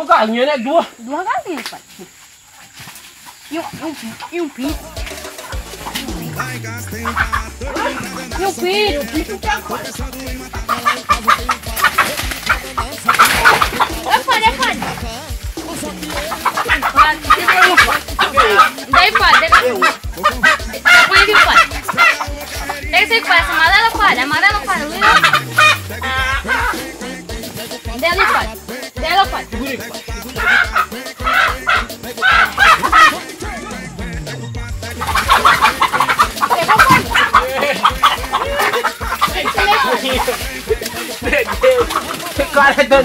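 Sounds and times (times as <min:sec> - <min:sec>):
chickens clucking: 0:00.0 - 0:43.0
background music with steady beat: 0:04.6 - 0:43.0.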